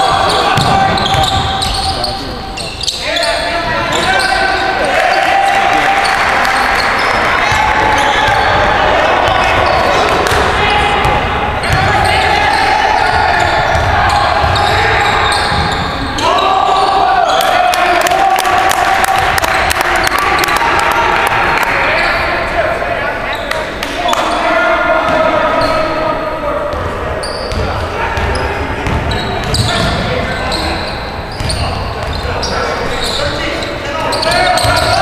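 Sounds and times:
raised voices echoing: 0.0 - 35.0.

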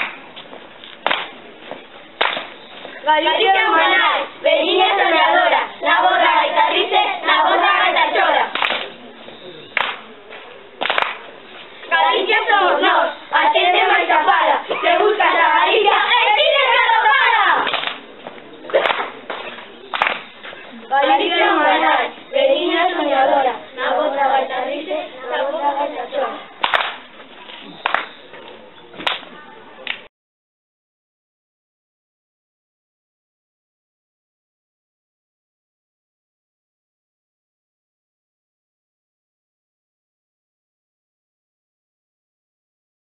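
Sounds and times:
hand claps: 0.0 - 1.4, 2.2 - 2.6, 8.5 - 8.9, 9.8 - 11.2, 17.7 - 18.0, 18.7 - 20.3, 26.6 - 27.0, 27.8 - 28.1, 29.0 - 30.1
children singing: 3.0 - 8.6, 11.9 - 17.7, 20.6 - 26.6.

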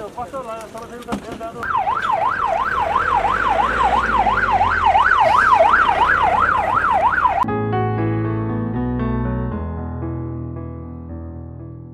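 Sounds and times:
police siren wailing: 1.6 - 7.5
piano music: 5.2 - 11.9.

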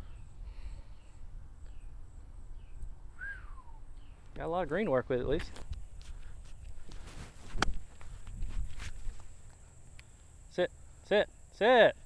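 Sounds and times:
bird chirps: 0.0 - 4.5
wind rumble on microphone: 5.1 - 9.4.

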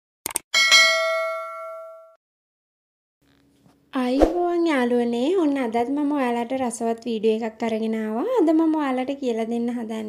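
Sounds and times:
bell ding: 0.6 - 2.2.

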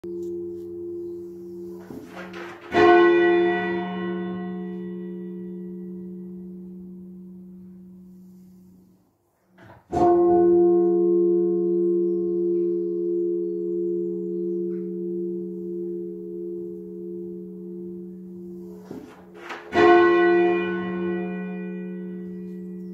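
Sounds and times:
church bell tolling: 0.0 - 22.9.

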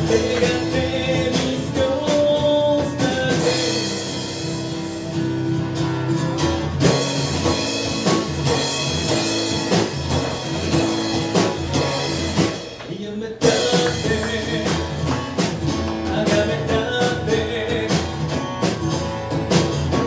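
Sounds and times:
acoustic guitar strumming: 0.0 - 20.0
drums: 0.0 - 20.0.

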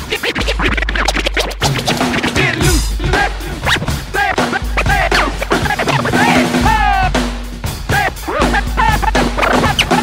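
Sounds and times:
record scratches: 0.0 - 2.8, 3.6 - 4.0, 4.8 - 6.4, 9.0 - 10.0
hip-hop beat with deep bass: 0.0 - 7.2, 7.9 - 10.0.

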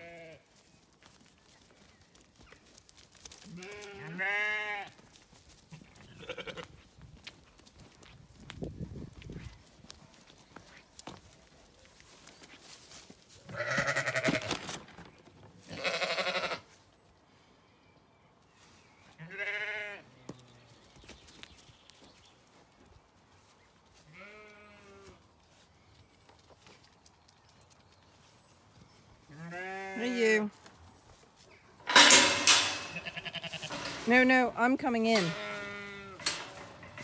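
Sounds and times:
sheep bleating: 0.0 - 0.4, 3.5 - 5.0, 6.0 - 6.7, 13.5 - 14.5, 15.6 - 16.7, 19.2 - 20.0, 24.1 - 25.2, 29.3 - 30.4, 32.7 - 33.9, 35.0 - 36.3.

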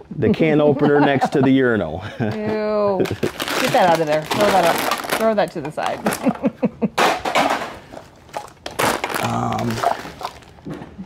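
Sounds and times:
person laughing: 0.3 - 3.4, 6.0 - 7.0
plastic bags rustling: 3.0 - 6.4, 7.0 - 10.7
rummaging in plastic tote: 3.1 - 6.3, 7.4 - 10.6.

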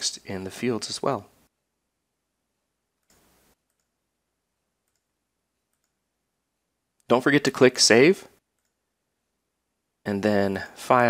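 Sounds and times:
faint computer mouse clicks: 3.0 - 3.9.

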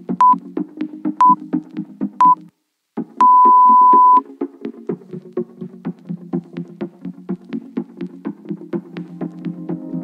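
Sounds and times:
electronic background music: 0.0 - 2.5
timer beeps: 0.2 - 0.4, 2.2 - 2.4, 3.2 - 4.2.

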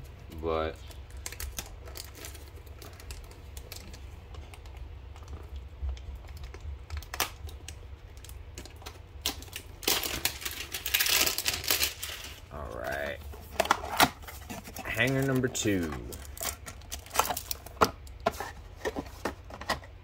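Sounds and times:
steady low hum: 0.0 - 20.0
cards and packaging clattering: 0.3 - 20.0.

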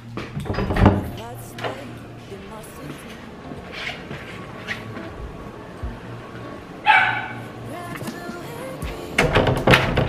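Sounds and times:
faint steady hum: 0.0 - 9.5.

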